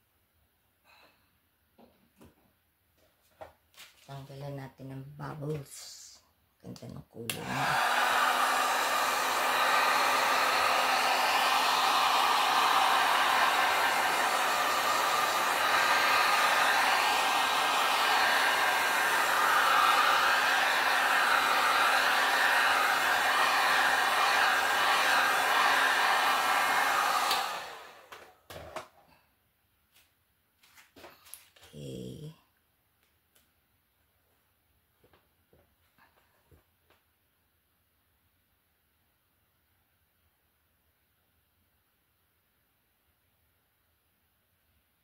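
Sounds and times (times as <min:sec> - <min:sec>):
heat gun blowing air: 0:07.4 - 0:28.3.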